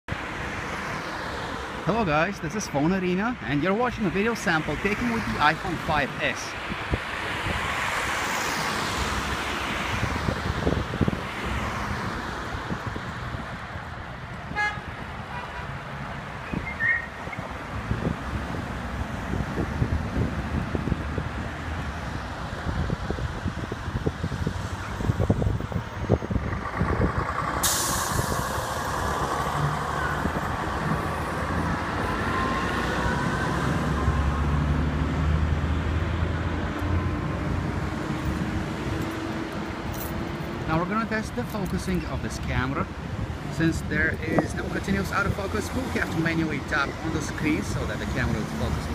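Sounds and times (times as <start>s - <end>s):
cars driving past: 0.1s - 48.9s
vehicle engine pulling away: 24.3s - 39.9s.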